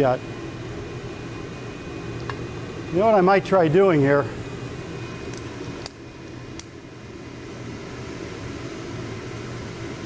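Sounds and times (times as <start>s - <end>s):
exhaust fan humming: 0.0s - 10.0s.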